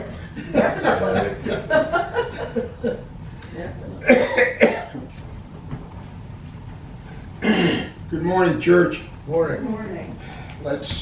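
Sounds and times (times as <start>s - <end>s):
man coughing: 4.0s - 5.1s, 7.4s - 8.0s.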